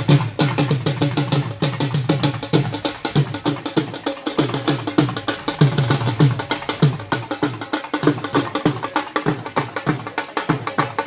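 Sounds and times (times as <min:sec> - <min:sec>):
fast heavy drumming: 0:00.0 - 0:11.0.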